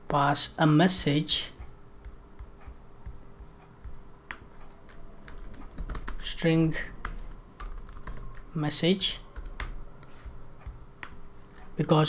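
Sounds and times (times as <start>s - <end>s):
faint steady hum: 0.0s - 12.0s
keyboard typing: 2.0s - 11.8s.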